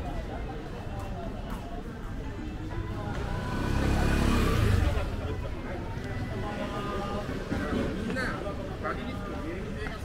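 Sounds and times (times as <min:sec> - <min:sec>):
crowd murmur: 0:00.0 - 0:10.0
vehicle passing by: 0:03.2 - 0:05.4.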